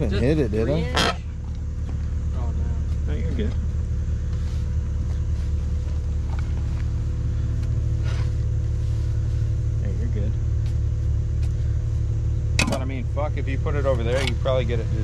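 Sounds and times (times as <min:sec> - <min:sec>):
engine idling: 0:00.0 - 0:15.0.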